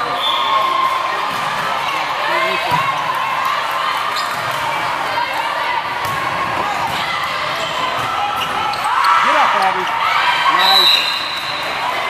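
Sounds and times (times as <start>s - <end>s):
echoing hubbub of voices: 0.0s - 12.0s.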